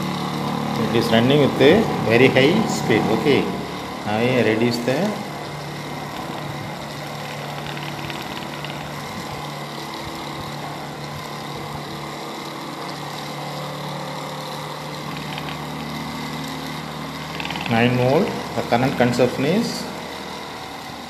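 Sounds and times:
electric motor hum and whine: 0:00.0 - 0:21.0.

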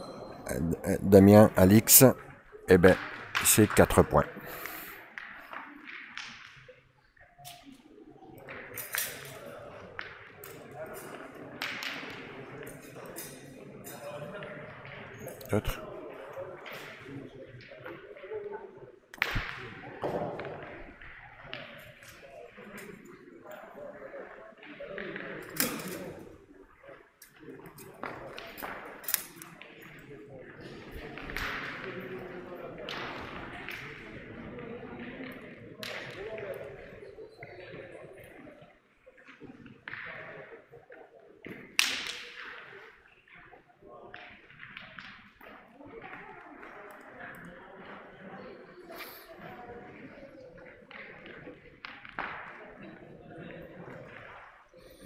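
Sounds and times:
murmur of voices: 0:00.0 - 0:55.0.

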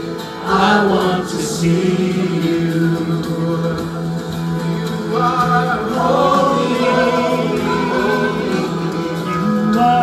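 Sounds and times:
band accompaniment: 0:00.0 - 0:10.0
women singing long notes: 0:05.2 - 0:10.0.

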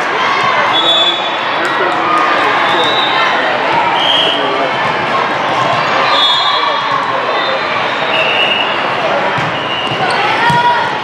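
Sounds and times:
many voices in a hall: 0:00.0 - 0:11.0
balls hit and bouncing: 0:09.0 - 0:11.0.

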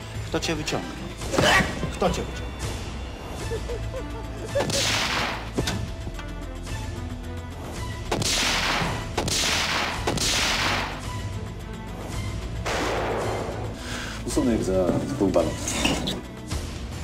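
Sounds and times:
low film score: 0:00.0 - 0:17.0
echoing pistol shots: 0:08.1 - 0:11.1, 0:12.6 - 0:13.7.

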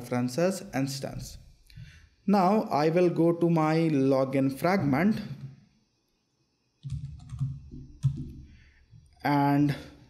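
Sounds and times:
laptop keyboard keystrokes: 0:06.8 - 0:08.5.

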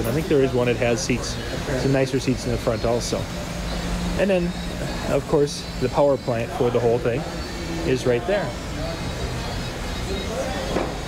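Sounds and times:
faint distant voices: 0:00.0 - 0:11.0.

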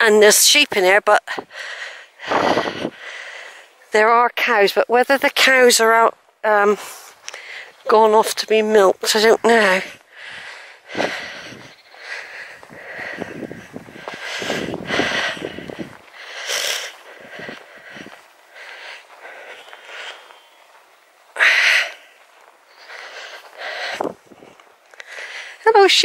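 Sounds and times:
person breathing: 0:01.3 - 0:03.9, 0:06.8 - 0:07.8, 0:09.8 - 0:20.6, 0:21.3 - 0:25.6.

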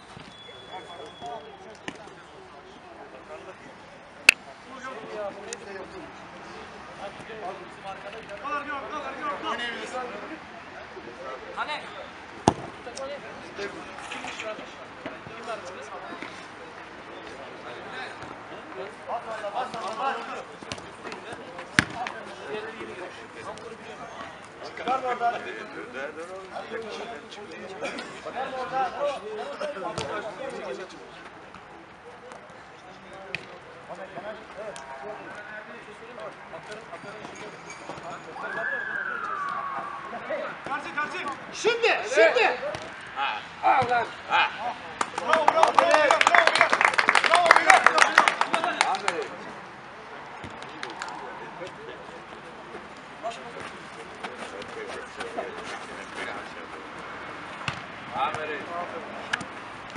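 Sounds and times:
background hubbub: 0:00.0 - 0:59.9
players calling: 0:34.2 - 0:59.9
football kicked hard: 0:57.6 - 0:58.4.

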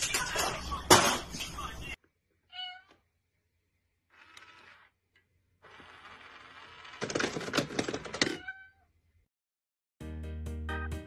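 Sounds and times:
electronic meow: 0:02.5 - 0:02.9
toy mechanism whir: 0:04.1 - 0:05.0, 0:05.6 - 0:08.3.

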